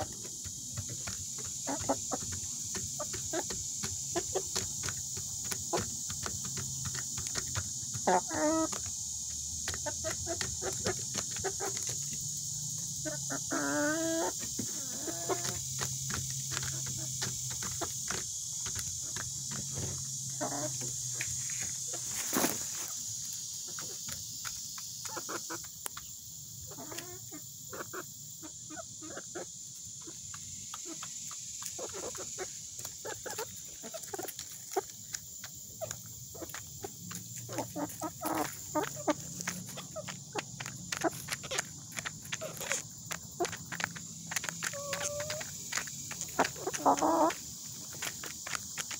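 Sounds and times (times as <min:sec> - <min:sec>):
hens calling: 0:00.0 - 0:05.0, 0:07.8 - 0:08.9, 0:13.0 - 0:18.2, 0:19.8 - 0:20.9, 0:35.8 - 0:48.9
beaks pecking plastic feeder: 0:00.0 - 0:22.6, 0:23.2 - 0:27.2, 0:29.9 - 0:48.9
beaks tapping plastic feeder: 0:30.3 - 0:47.4.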